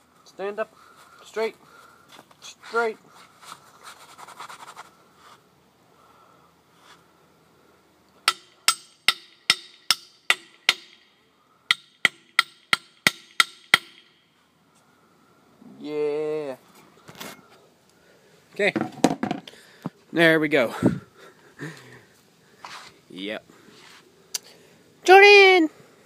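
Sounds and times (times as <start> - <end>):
hammer striking metal post: 8.2 - 11.1, 11.7 - 14.2.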